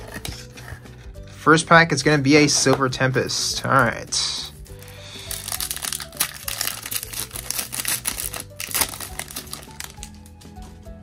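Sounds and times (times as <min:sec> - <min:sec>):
background music: 0:00.0 - 0:11.0
foil wrapper crinkling: 0:04.8 - 0:10.3.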